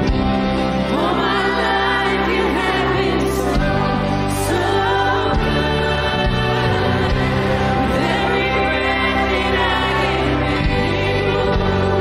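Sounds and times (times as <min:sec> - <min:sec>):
band playing worship music: 0:00.0 - 0:12.0
sustained bass notes: 0:00.0 - 0:12.0
several voices singing together: 0:00.6 - 0:12.0.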